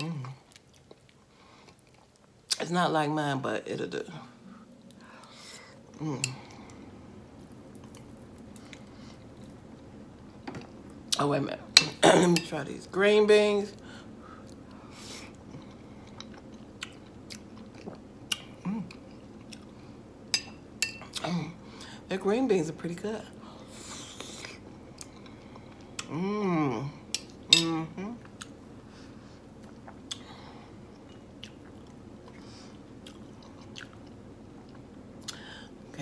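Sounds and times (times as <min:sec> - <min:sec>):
soft chewing: 0:00.0 - 0:02.7, 0:04.2 - 0:11.1, 0:13.7 - 0:21.2, 0:23.4 - 0:26.2, 0:27.1 - 0:35.6.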